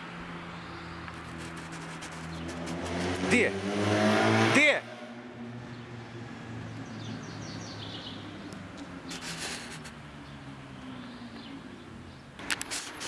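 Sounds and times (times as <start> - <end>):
outdoor background noise: 0.0 - 13.0
man shouting: 4.5 - 5.0.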